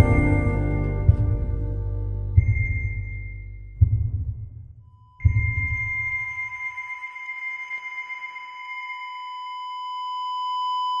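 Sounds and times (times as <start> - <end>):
high electronic tone: 4.9 - 9.2.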